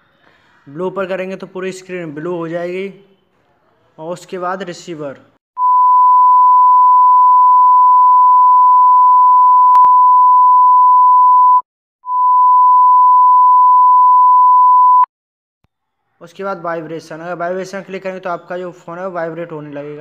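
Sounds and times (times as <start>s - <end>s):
steady pure test tone: 5.6s - 15.1s.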